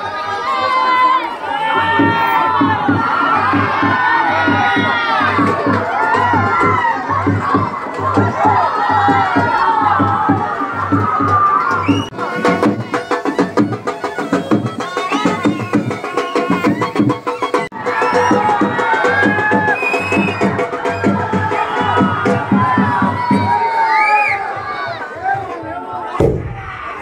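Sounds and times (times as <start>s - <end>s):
crowd shouting and cheering: 0.0s - 27.0s
fast dense drumming: 26.2s - 27.0s.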